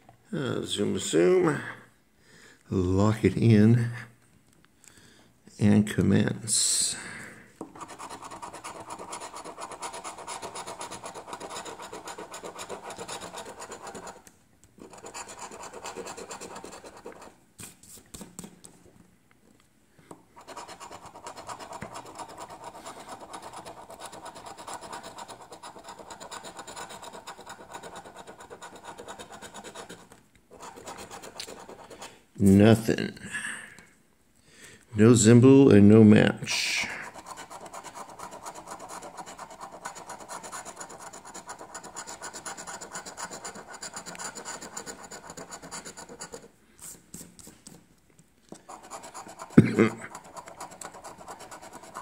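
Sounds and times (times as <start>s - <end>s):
coin scraping scratch card: 7.8s - 14.2s, 14.8s - 17.4s, 20.4s - 32.2s, 36.9s - 47.3s, 48.6s - 52.0s.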